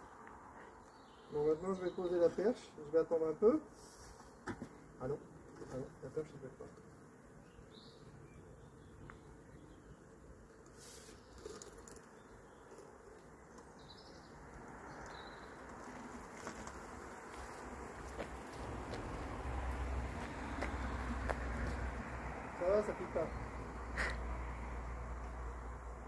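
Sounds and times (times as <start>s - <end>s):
honeybees buzzing: 0.0s - 26.0s.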